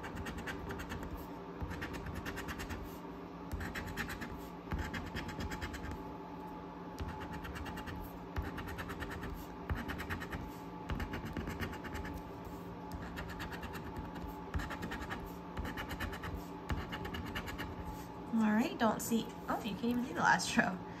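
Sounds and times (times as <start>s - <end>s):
coin scraping scratch card: 0.0s - 2.9s, 3.5s - 6.0s, 7.0s - 12.2s, 12.9s - 17.8s.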